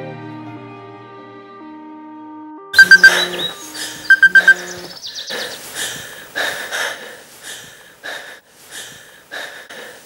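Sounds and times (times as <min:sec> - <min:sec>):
jangling electronic tone: 0:02.8 - 0:04.9
quick high alarm beeps: 0:02.8 - 0:04.9.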